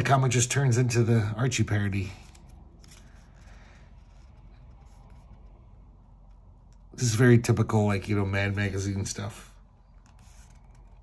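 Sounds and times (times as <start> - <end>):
paper rustling: 1.9 - 5.6, 9.8 - 11.0.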